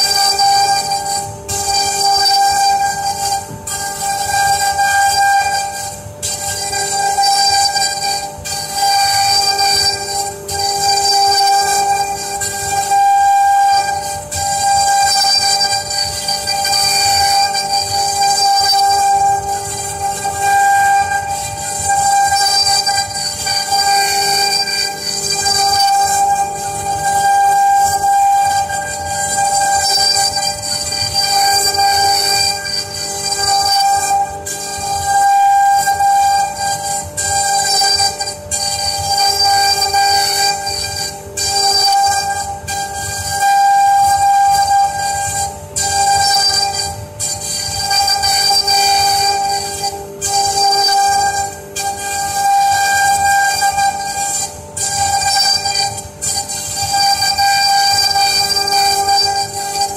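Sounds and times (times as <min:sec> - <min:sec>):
router whining: 0:00.0 - 0:59.9.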